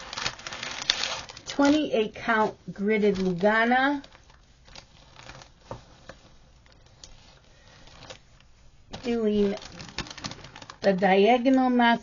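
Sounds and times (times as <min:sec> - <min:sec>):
fabric rustling: 0:00.0 - 0:11.3.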